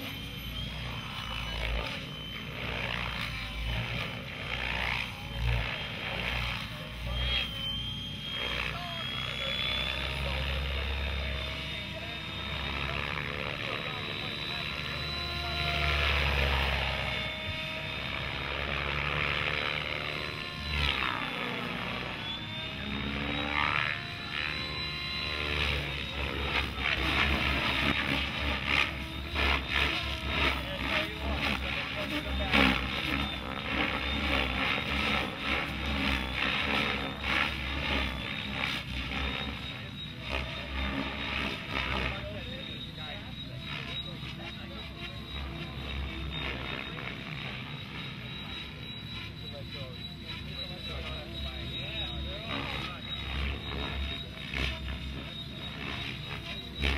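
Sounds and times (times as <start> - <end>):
rc helicopter whine: 0.0 - 56.9.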